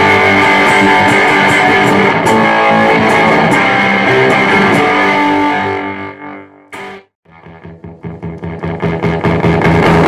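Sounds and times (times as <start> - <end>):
distorted fuzz electric guitar: 0.0 - 10.0.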